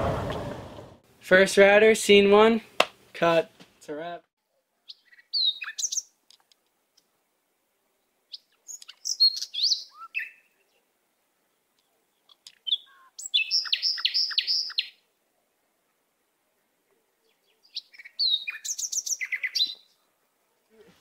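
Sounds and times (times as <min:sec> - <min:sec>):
songbirds chirping: 0:04.4 - 0:21.0.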